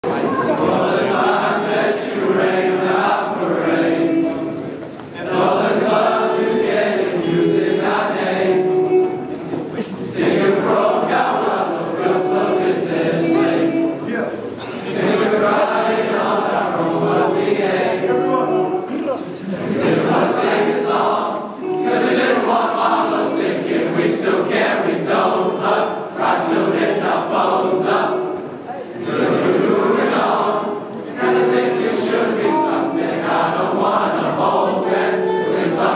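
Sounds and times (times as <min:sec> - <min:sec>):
boys singing together: 0:00.1 - 0:14.0, 0:14.8 - 0:35.9.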